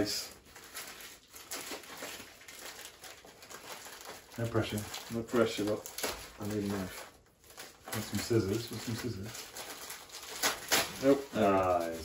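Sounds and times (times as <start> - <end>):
packaging crinkling and rustling: 0.0 - 12.0.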